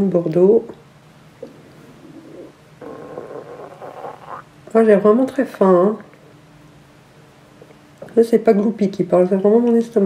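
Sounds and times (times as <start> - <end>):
stomach growling: 1.4 - 4.6.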